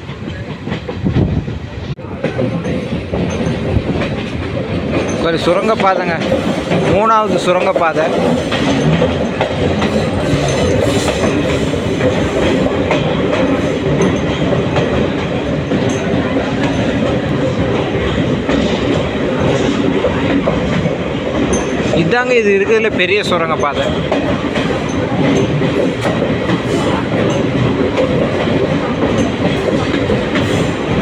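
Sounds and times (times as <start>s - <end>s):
train wheels rumbling on rails: 0.0s - 31.0s.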